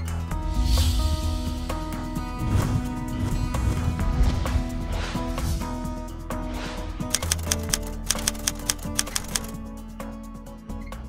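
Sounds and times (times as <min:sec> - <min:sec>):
typewriter keys clicking: 0:07.1 - 0:09.6.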